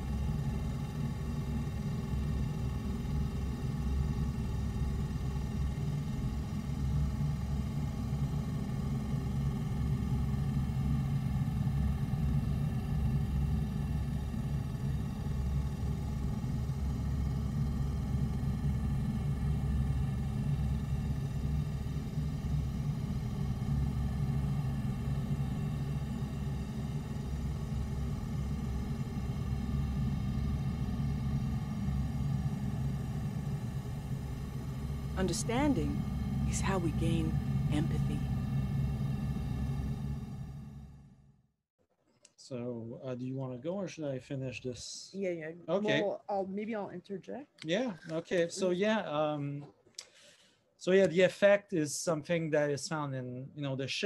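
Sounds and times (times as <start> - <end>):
low rumbling drone: 0.0 - 41.2.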